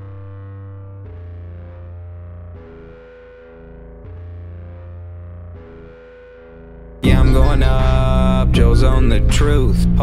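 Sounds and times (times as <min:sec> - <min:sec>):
distorted chord riff: 0:00.0 - 0:10.0
sustained bass notes: 0:00.0 - 0:10.0.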